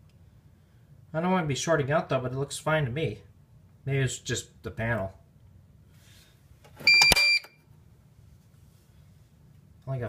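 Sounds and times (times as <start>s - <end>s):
short high alarm beep: 6.9s - 7.6s.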